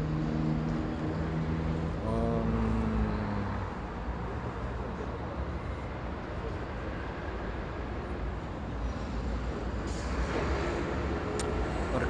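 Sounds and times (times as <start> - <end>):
road vehicles rumbling past: 0.0 - 12.0.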